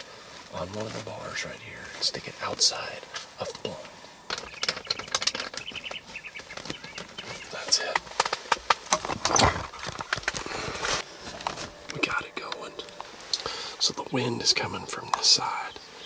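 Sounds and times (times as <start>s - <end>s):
fabric rustling: 6.0s - 12.2s.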